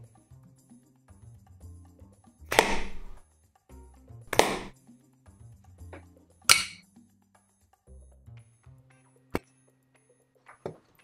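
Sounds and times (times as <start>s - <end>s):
background music: 0.0s - 11.0s
sharp hits: 6.5s - 6.8s.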